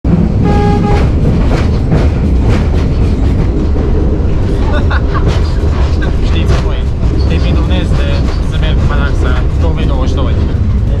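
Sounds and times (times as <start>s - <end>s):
railcar low rumble: 0.0s - 11.0s
train horn toot: 0.4s - 1.2s
wheels clicking on track: 0.7s - 11.0s.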